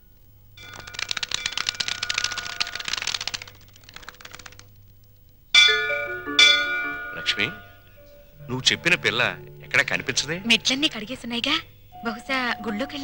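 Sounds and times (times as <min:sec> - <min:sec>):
flock of birds wingbeats: 0:00.6 - 0:04.7
musical stings with falling notes: 0:05.7 - 0:10.7.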